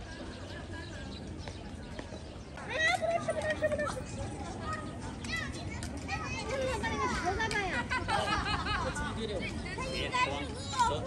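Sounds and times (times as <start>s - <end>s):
murmur of people: 0.0s - 11.0s.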